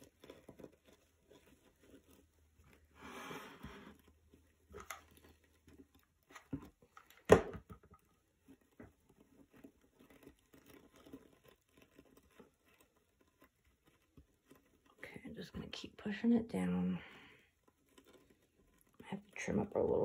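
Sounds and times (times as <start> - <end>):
scouring pad crinkling: 0.0 - 20.0.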